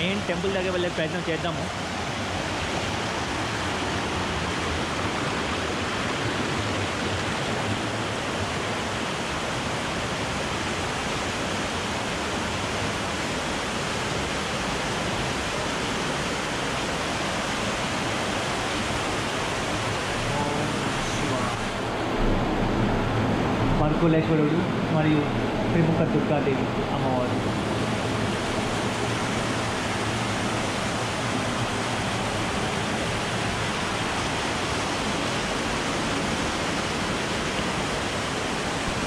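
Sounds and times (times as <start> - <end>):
stream rushing over rocks: 0.0 - 39.0.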